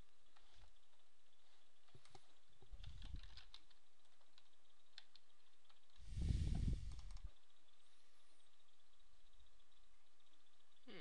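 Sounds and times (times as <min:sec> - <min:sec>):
keyboard keystrokes: 0:02.8 - 0:03.8
low muffled noise: 0:06.0 - 0:11.0
mouse clicks: 0:06.8 - 0:07.4.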